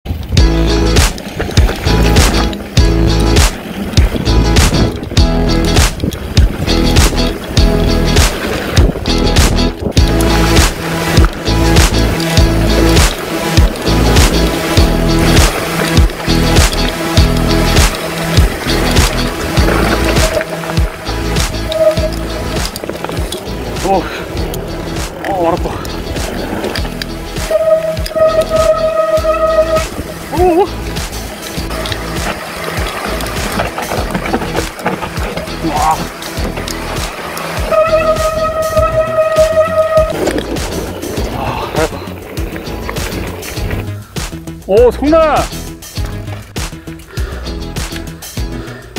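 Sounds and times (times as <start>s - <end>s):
bike clattering and rattling: 0.1s - 48.4s
tyres running over dirt: 0.1s - 48.9s
background music: 0.3s - 48.9s.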